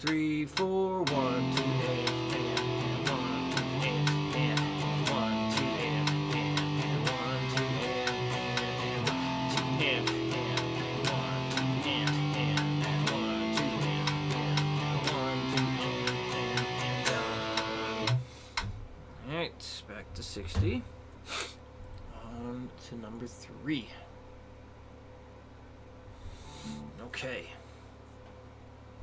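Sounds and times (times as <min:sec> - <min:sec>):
electric guitar strumming power chords: 0:00.0 - 0:18.4, 0:26.5 - 0:27.2.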